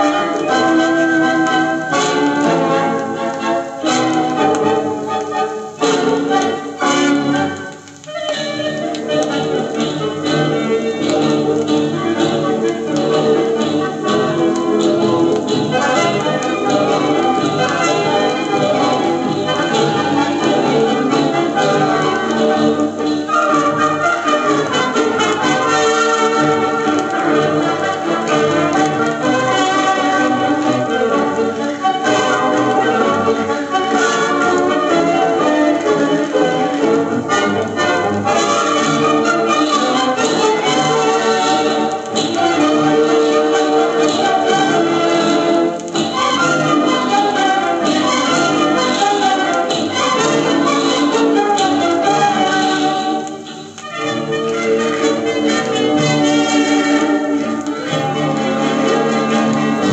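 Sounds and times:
music from a record player: 0.0s - 59.9s.

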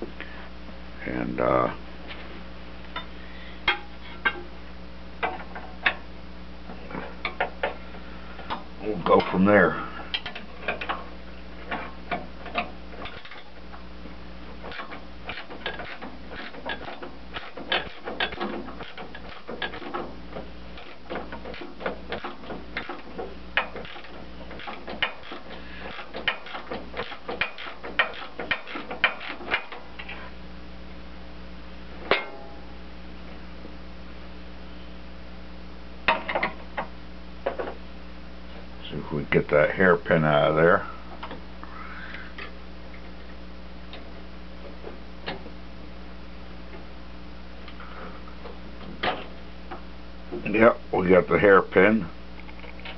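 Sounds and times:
steady low hum: 0.0s - 52.9s
wrenches clinking on metal: 11.7s - 13.5s, 14.7s - 20.1s, 20.8s - 30.2s.

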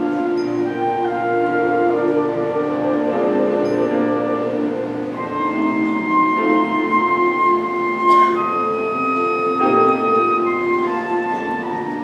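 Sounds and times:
flute melody: 0.0s - 12.0s
soft piano accompaniment: 0.0s - 12.0s.

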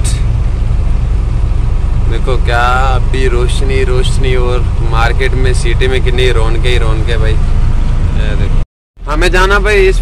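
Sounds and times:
road noise: 0.0s - 10.0s
truck engine rumbling: 0.0s - 10.0s.

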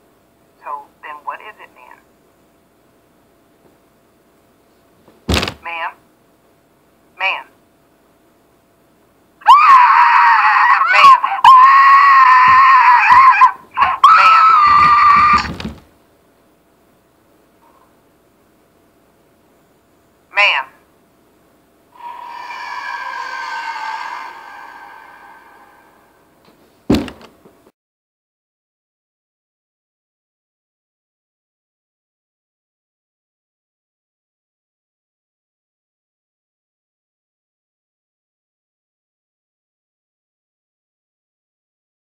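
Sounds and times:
high-pitched screaming: 9.4s - 15.5s, 22.0s - 26.4s.

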